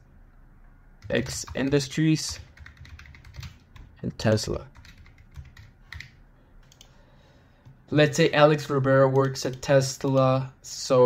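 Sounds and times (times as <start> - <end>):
computer keyboard typing: 1.0 - 6.9, 9.0 - 10.4.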